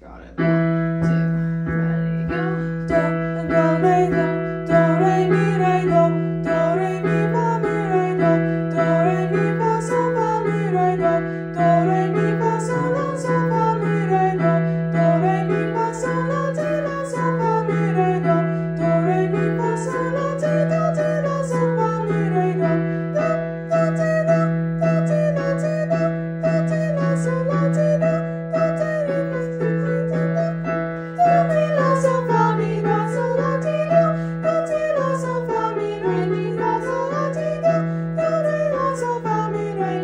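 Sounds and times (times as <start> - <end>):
low held piano note: 0.0 - 3.1
person singing vocal exercise: 1.0 - 40.0.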